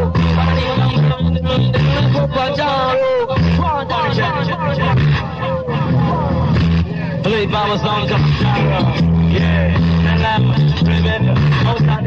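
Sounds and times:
deejay chanting on microphone: 0:00.0 - 0:12.0
heavy reggae bass line: 0:00.0 - 0:12.0.

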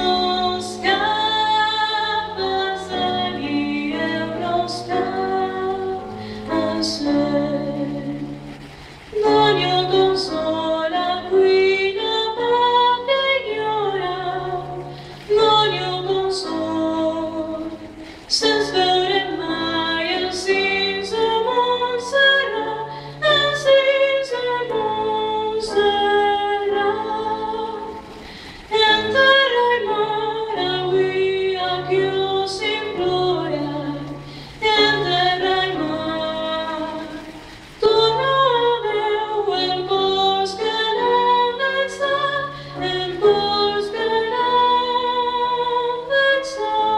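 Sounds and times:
woman singing: 0:00.0 - 0:08.4, 0:09.1 - 0:28.1, 0:28.7 - 0:46.9
piano accompaniment: 0:00.0 - 0:46.9.

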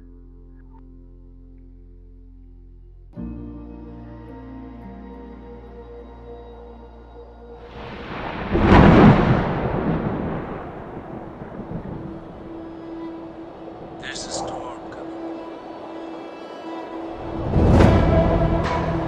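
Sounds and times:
ambient music with low tone: 0:00.0 - 0:19.0
thunder rumbling: 0:07.7 - 0:15.9.

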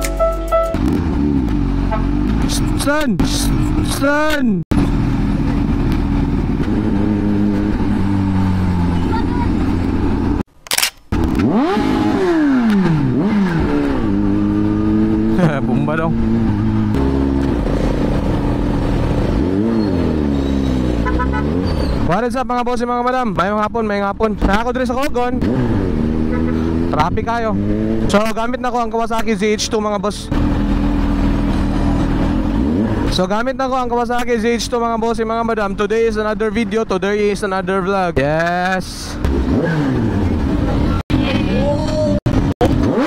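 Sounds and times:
music: 0:00.0 - 0:00.8
motorcycle engine revving: 0:00.0 - 0:04.0, 0:04.7 - 0:10.5, 0:11.1 - 0:33.6, 0:38.2 - 0:43.0.

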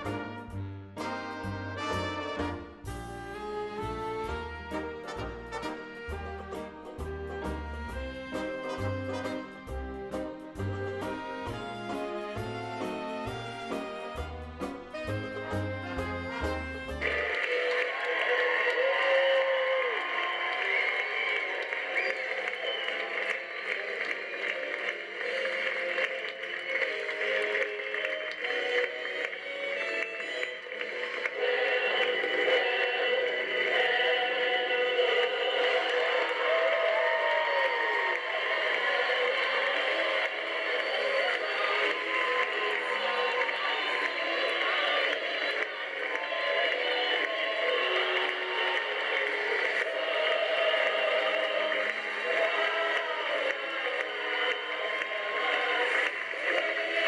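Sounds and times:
music of held notes: 0:00.0 - 0:17.4
music playing: 0:00.0 - 0:19.1, 0:19.9 - 0:57.0
audience applauding: 0:03.8 - 0:57.0.

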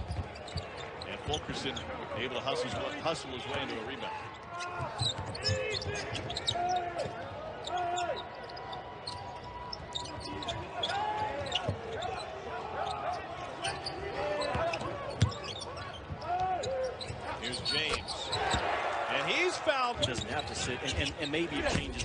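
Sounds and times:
sneakers squeaking: 0:00.0 - 0:22.0.

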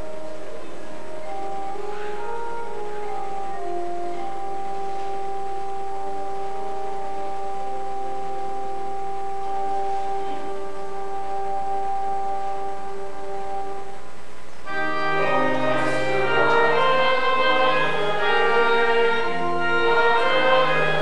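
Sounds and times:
church organ playing: 0:00.0 - 0:21.0.

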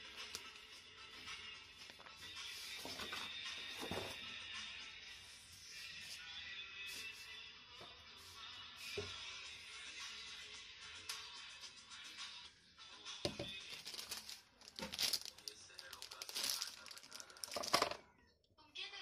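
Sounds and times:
plastic wrapper crinkling: 0:13.4 - 0:17.9.

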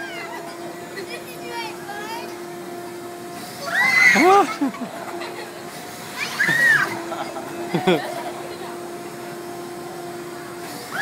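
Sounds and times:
steady low hum: 0:00.0 - 0:11.0
riders squealing: 0:06.1 - 0:07.6.

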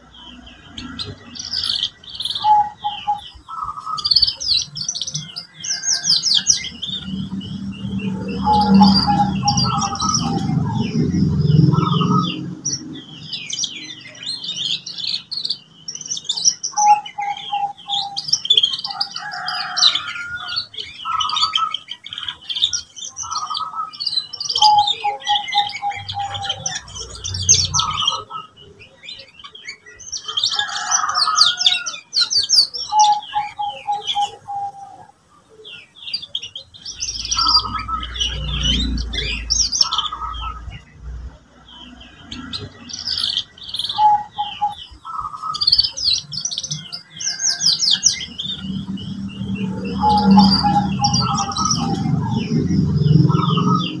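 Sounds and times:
canary singing trills: 0:00.0 - 0:54.0.

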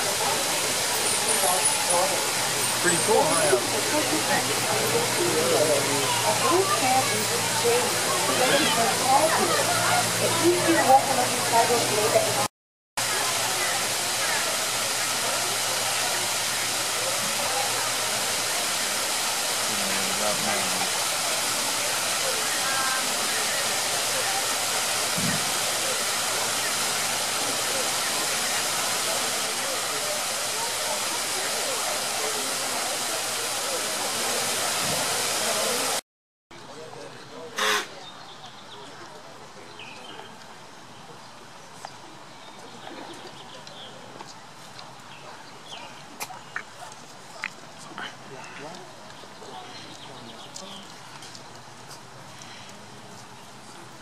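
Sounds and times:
steady rushing like falling water: 0:00.0 - 0:36.0, 0:36.6 - 0:54.0
faint voices: 0:00.0 - 0:54.0.

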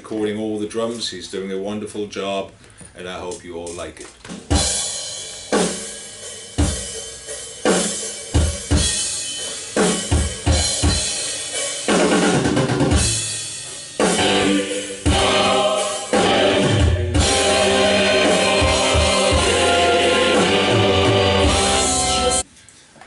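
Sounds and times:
metal drum kit playing: 0:03.3 - 0:22.4.

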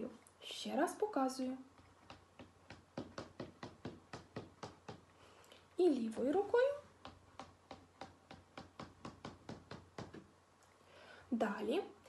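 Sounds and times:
fingertips tapping on a tabletop: 0:01.7 - 0:05.1, 0:06.1 - 0:10.3.

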